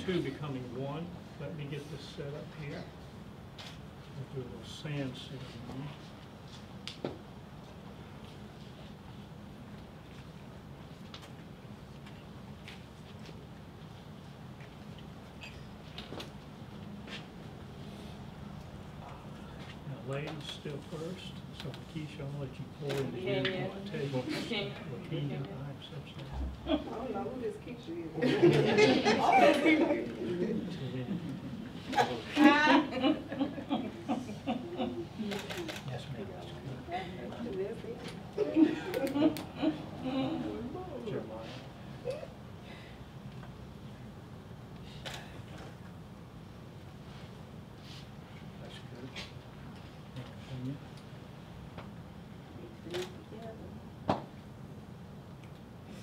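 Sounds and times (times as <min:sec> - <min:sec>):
low steady background hum: 0:00.0 - 0:56.0.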